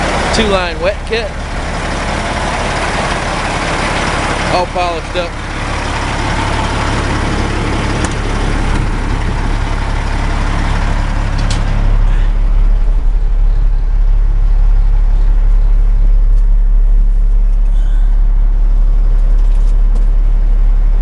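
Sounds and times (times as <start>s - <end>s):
diesel engine idling: 0.0s - 21.0s.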